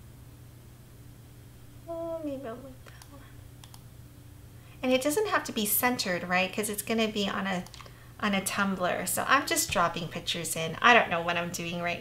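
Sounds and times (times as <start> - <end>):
steady low background hum: 0.0 - 12.0
woman humming: 1.8 - 3.3
computer mouse clicks: 2.8 - 3.9, 7.6 - 8.0.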